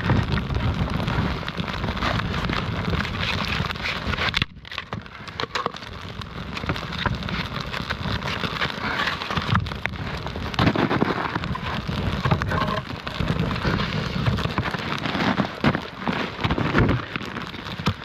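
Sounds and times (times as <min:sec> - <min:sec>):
campfire crackling and hissing: 0:00.0 - 0:18.0.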